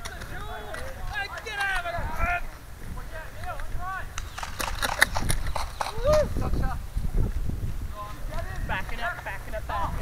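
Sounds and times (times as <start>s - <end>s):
running footsteps: 0.0s - 10.0s.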